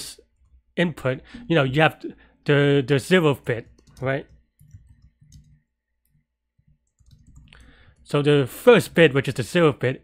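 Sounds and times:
keyboard keys clicking: 0:03.6 - 0:05.6, 0:06.8 - 0:07.7.

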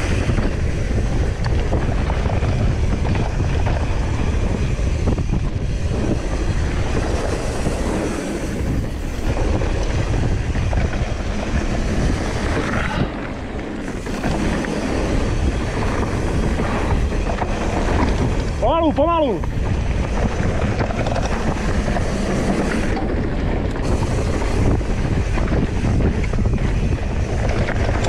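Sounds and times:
mountain bike rumbling and rattling: 0:00.0 - 0:28.0
wind buffeting microphone: 0:00.0 - 0:28.0.

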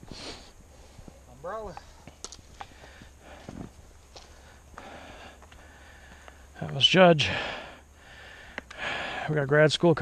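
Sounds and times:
footsteps on dirt trail: 0:00.0 - 0:06.9.

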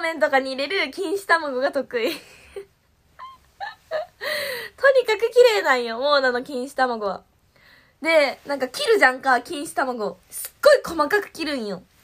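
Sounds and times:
woman laughing softly: 0:02.0 - 0:04.7.

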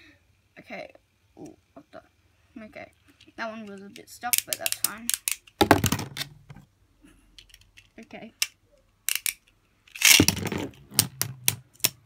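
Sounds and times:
spinning tops clicking together: 0:09.1 - 0:10.3.

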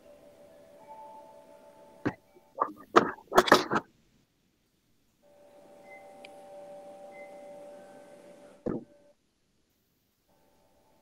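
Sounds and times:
faint two-note tone: 0:00.0 - 0:02.6, 0:05.2 - 0:09.1
low hiss: 0:00.0 - 0:11.0.

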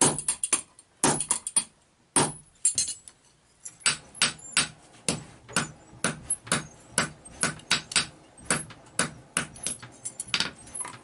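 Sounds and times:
hammer striking steel on anvil: 0:03.8 - 0:10.5.

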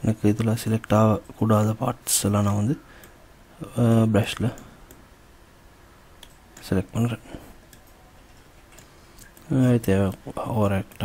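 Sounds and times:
man speaking: 0:03.6 - 0:04.7, 0:06.6 - 0:07.4, 0:09.5 - 0:11.0.

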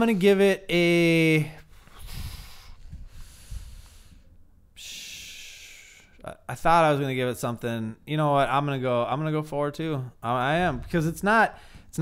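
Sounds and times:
man breathing: 0:01.6 - 0:06.2, 0:11.5 - 0:12.0.

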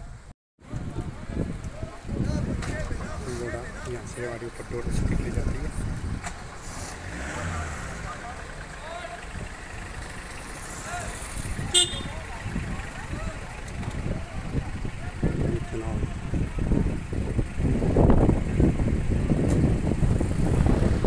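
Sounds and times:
low steady traffic rumble: 0:00.0 - 0:21.0
vehicles passing close by: 0:00.0 - 0:21.0
sharp high-pitched horn toot: 0:11.7 - 0:12.2.

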